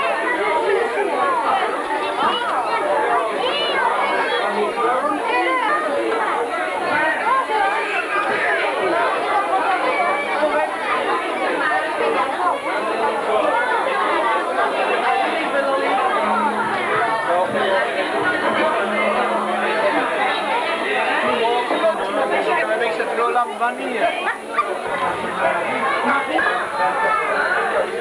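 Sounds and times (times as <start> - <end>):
crowd chattering: 0.0 - 28.0.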